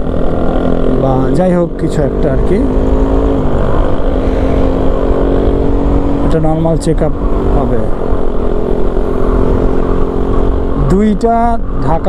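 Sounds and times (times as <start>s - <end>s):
low road and wind rumble: 0.0s - 12.0s
motorcycle engine cruising: 0.0s - 12.0s.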